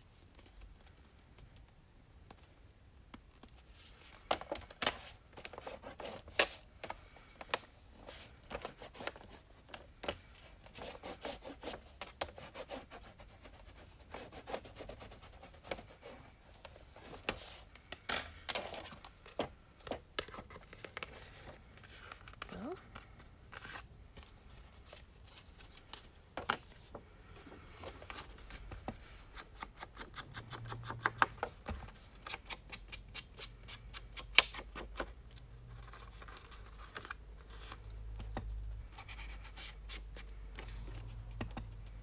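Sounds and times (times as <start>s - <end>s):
hands rubbing paper and card: 4.9s - 17.7s.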